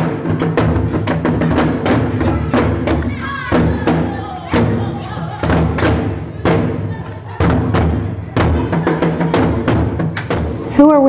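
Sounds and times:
heavy drum strikes: 0.0 - 11.0.

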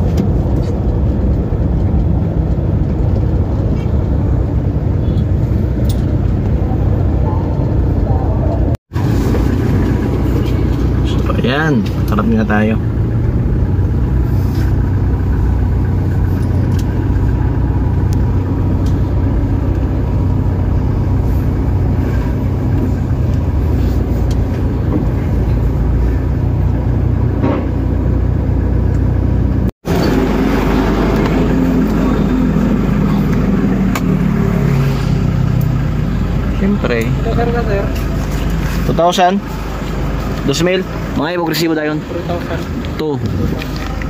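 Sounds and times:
car engine low rumble: 0.0 - 44.0.

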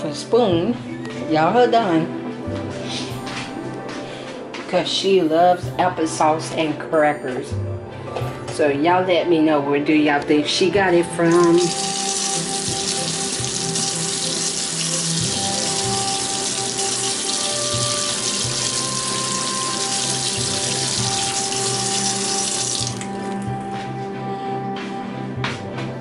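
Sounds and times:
soft background music: 0.0 - 26.0
faucet running into metal sink: 11.2 - 23.1.

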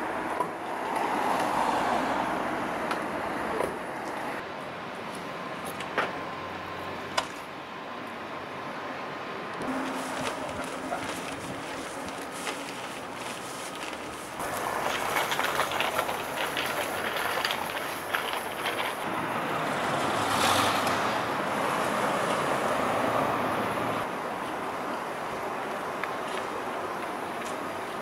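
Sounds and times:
street traffic noise: 0.0 - 28.0
vehicle passing: 0.7 - 4.4, 9.6 - 24.1.

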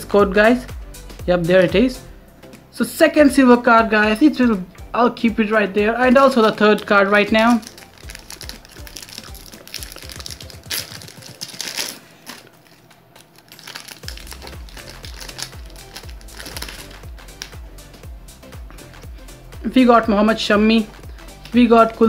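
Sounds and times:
background music with low beat: 0.0 - 22.0
foil pack crinkling and tearing: 6.4 - 17.6.

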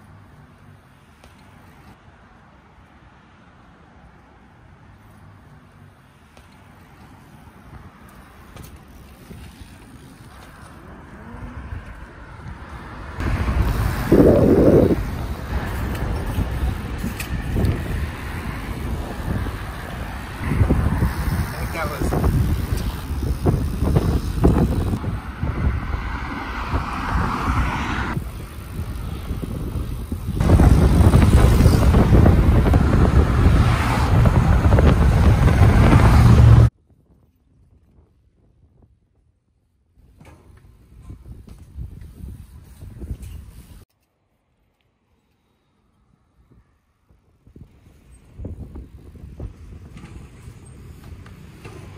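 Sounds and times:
wind buffeting microphone: 11.4 - 39.3, 40.5 - 43.8, 46.1 - 51.9.

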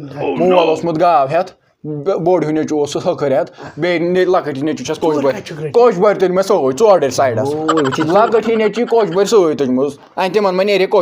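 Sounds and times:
man talking animatedly: 7.3 - 9.8.

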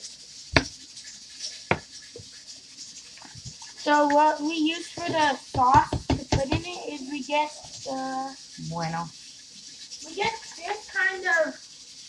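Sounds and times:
sharp tap on plastic: 5.0 - 6.7.

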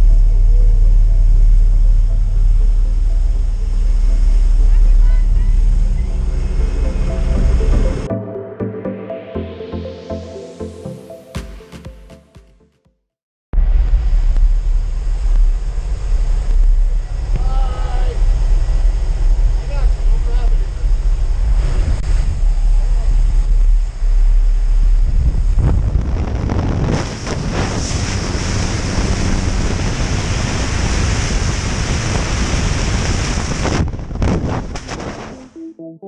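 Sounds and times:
aircraft engine drone: 0.0 - 11.2, 13.6 - 33.6
wind buffeting microphone: 13.8 - 35.4.

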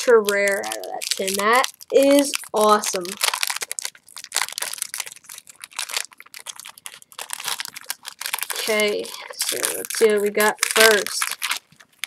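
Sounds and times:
foil wrapper crinkling: 0.0 - 12.0
foil wrapper tearing: 0.0 - 12.0.

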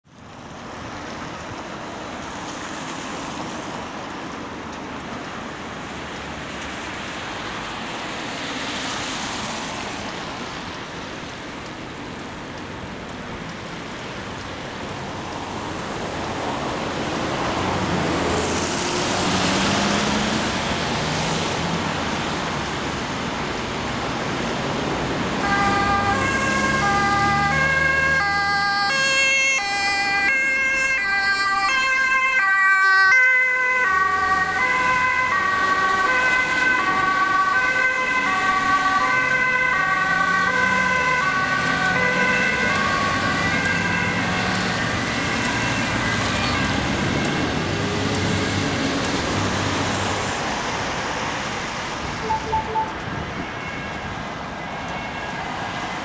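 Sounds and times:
road traffic passing: 0.0 - 56.0
two-tone ambulance sirens: 14.7 - 56.0.

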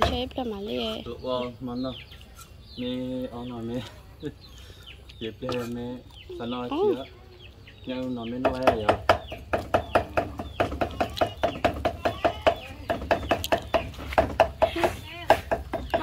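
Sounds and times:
cleaver chopping meat on wood: 8.4 - 16.0.

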